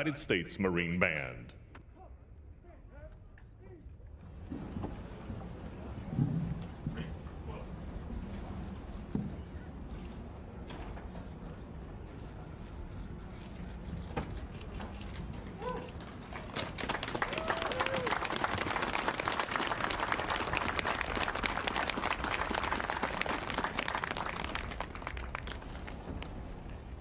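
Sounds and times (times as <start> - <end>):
audience applauding: 16.0 - 26.3.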